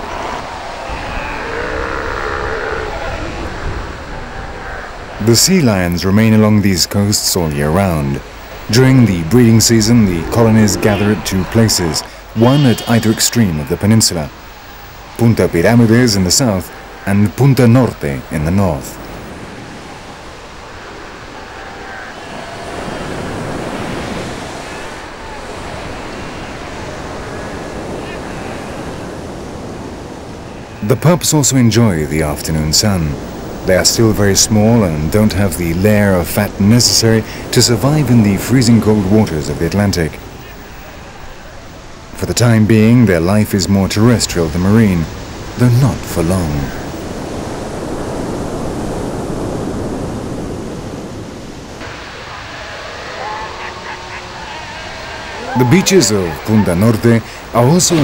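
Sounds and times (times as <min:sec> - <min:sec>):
steady rushing background: 0:00.0 - 0:26.6, 0:51.0 - 0:58.0
sea lions calling: 0:00.0 - 0:48.3, 0:51.7 - 0:58.0
ocean surf breaking on beach: 0:00.0 - 0:58.0.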